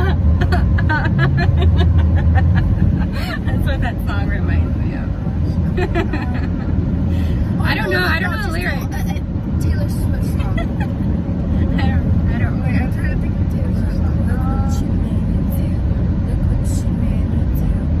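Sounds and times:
laughter: 0:00.0 - 0:03.4, 0:05.7 - 0:06.7, 0:10.4 - 0:11.0
women's voices: 0:00.0 - 0:06.7, 0:07.4 - 0:11.0, 0:11.6 - 0:18.0
car cabin road rumble: 0:00.0 - 0:18.0.

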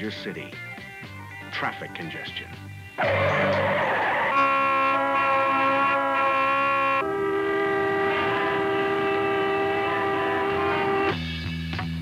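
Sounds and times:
vehicle horns blaring: 0:03.0 - 0:11.2.

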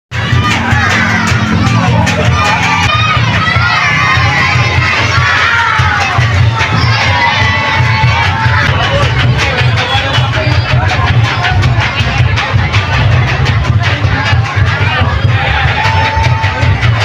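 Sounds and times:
crowd shouting and chanting: 0:00.1 - 0:17.0
low pulsing beat: 0:00.1 - 0:17.0.

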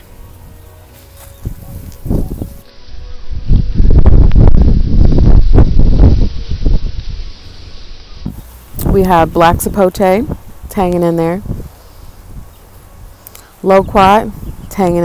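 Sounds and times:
rustling: 0:00.0 - 0:02.8
microphone handling noise: 0:00.9 - 0:02.6, 0:03.5 - 0:07.2, 0:08.2 - 0:12.5
loud rumbling wind: 0:01.4 - 0:15.0.

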